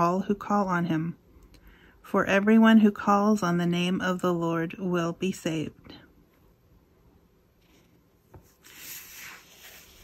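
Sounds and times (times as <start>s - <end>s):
hand rubbing over paper: 7.7s - 10.0s
soft papery swish: 8.4s - 10.0s.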